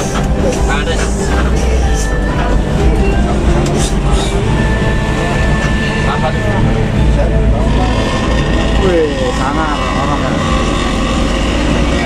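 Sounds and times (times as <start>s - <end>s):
bus engine drone: 0.0s - 12.0s
road noise: 0.0s - 12.0s
voices: 0.0s - 12.0s.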